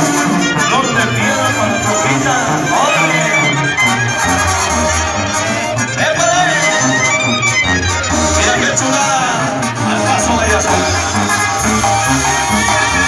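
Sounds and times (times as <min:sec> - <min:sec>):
regional band music: 0:00.0 - 0:13.0.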